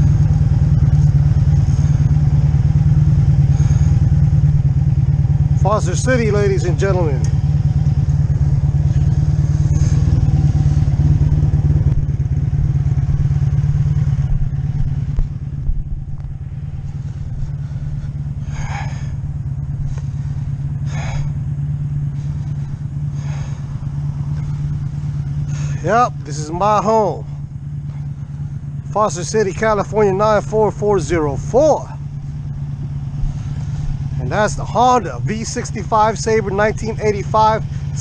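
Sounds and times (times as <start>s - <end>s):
motorcycle engine running: 0.0s - 38.0s.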